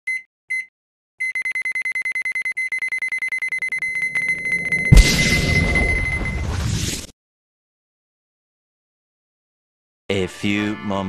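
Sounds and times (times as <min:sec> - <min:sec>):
electronic alarm beeps: 0:00.1 - 0:06.6.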